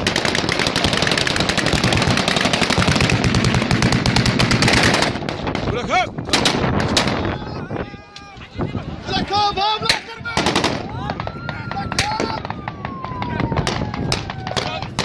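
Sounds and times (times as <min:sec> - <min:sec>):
automatic gunfire: 0:00.0 - 0:05.5.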